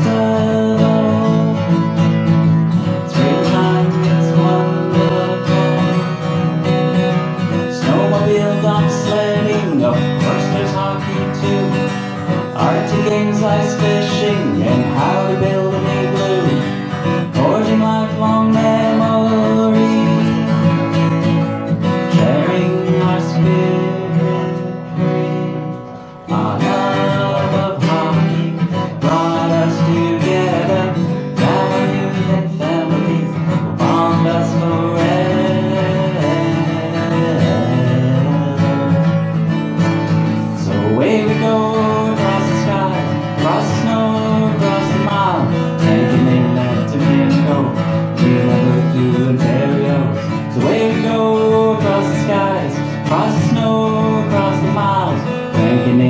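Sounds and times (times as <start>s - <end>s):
acoustic guitar strumming: 0.0s - 56.0s
man singing: 0.0s - 56.0s.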